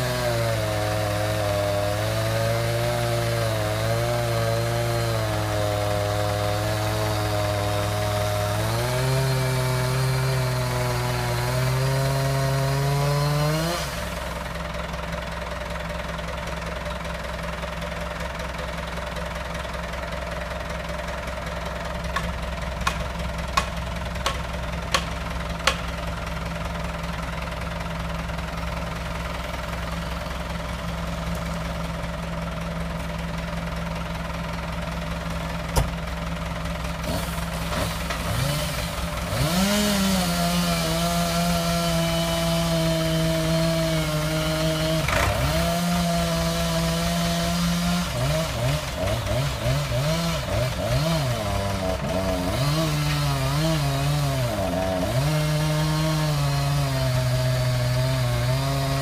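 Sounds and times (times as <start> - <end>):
chainsaw running under load: 0.0 - 59.0
tractor diesel engine idling: 13.9 - 39.6
sharp knocks: 23.6 - 25.9, 35.7 - 36.0.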